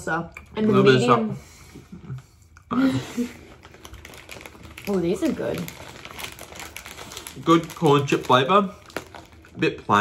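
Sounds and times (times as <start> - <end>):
tortilla chip crunching: 3.5 - 10.0.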